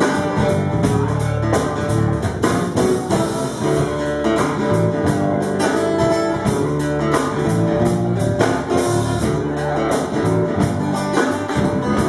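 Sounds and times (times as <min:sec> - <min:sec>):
drum kit playing: 0:00.0 - 0:12.0
electric guitars strummed and picked: 0:00.0 - 0:12.0.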